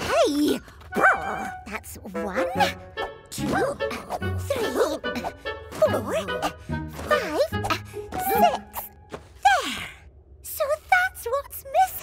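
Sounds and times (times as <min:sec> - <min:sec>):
children's background music: 0:01.0 - 0:09.2.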